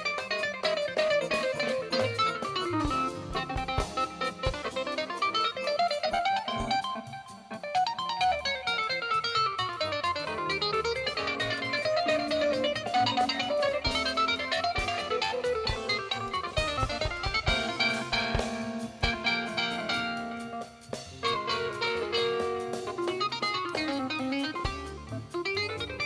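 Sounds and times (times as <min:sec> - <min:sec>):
drums: 0:00.0 - 0:26.0.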